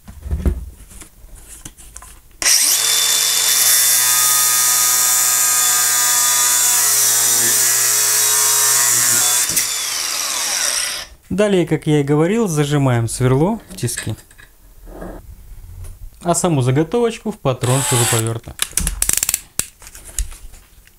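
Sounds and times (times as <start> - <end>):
angle grinder cutting metal: 2.4 - 11.2, 17.6 - 18.3.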